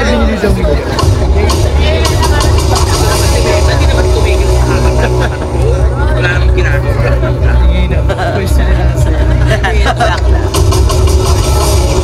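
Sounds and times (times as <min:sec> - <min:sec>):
indistinct voices talking: 0:00.0 - 0:12.0
steady deep rumble: 0:00.5 - 0:12.0.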